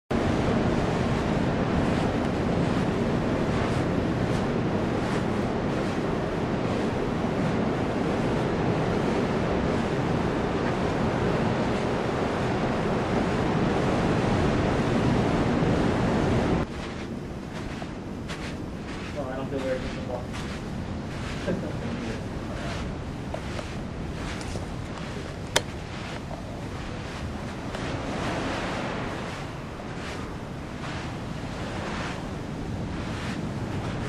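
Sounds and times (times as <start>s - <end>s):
ocean surf rushing: 0.1s - 34.0s
wind: 0.1s - 34.0s.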